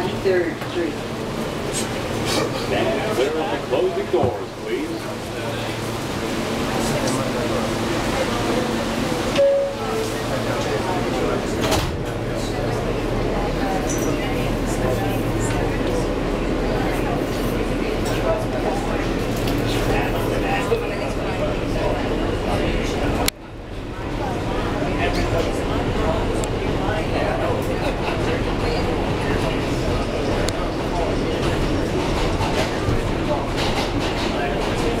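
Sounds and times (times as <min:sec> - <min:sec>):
passengers' voices: 0:00.0 - 0:35.0
subway train rumbling: 0:00.0 - 0:35.0.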